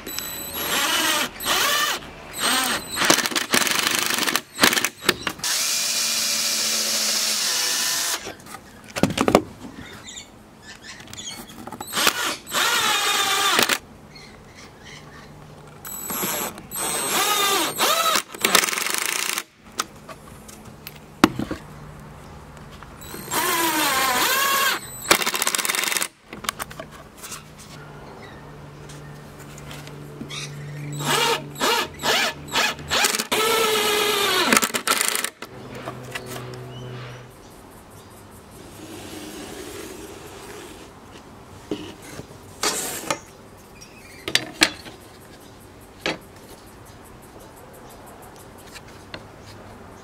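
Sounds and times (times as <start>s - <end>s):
cordless driver driving screws: 15.9s - 19.4s, 23.0s - 26.1s.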